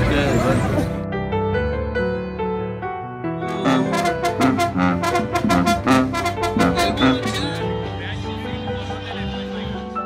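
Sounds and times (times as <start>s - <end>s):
brass band playing: 3.5s - 7.8s
bass drum beat: 3.7s - 9.8s.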